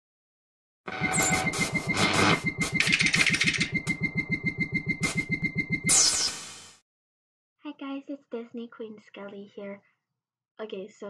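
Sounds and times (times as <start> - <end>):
steady high beeping tone: 0.9 - 6.7.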